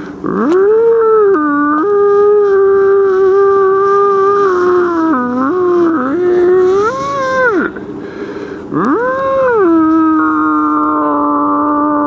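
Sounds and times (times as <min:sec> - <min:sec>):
elk bugle calls: 0:00.2 - 0:12.0.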